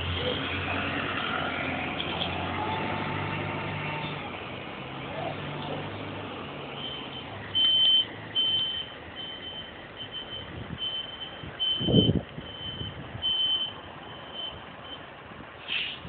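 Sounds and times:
bus reversing alarm beeping: 0:06.6 - 0:15.1.

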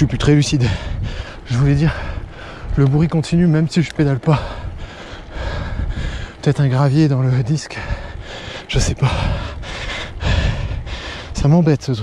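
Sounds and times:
steady rushing noise: 0:00.0 - 0:12.0
person breathing heavily: 0:00.6 - 0:02.8, 0:04.3 - 0:06.4, 0:07.7 - 0:11.4.

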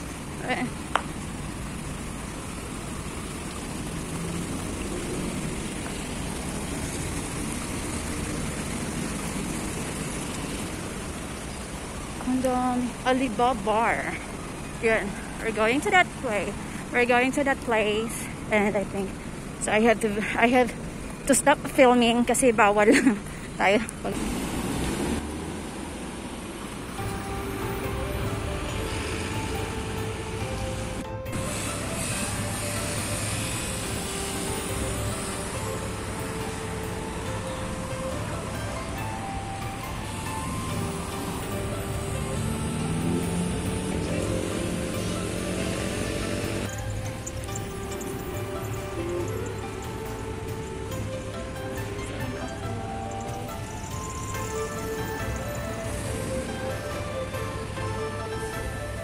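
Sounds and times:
fountain water splashing: 0:00.0 - 0:59.0
street traffic rumble: 0:00.0 - 0:59.0
slow background music: 0:26.8 - 0:59.0.

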